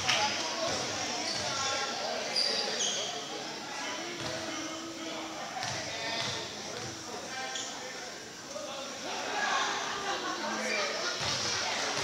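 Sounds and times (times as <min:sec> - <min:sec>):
echoing crowd chatter: 0:00.0 - 0:12.0
sneaker squeaks: 0:00.7 - 0:03.3, 0:05.6 - 0:07.8.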